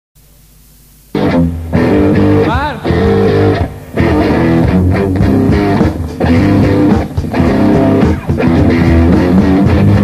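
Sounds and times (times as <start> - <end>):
faint tape hiss: 0.2 - 10.0
punk rock band playing: 1.2 - 10.0.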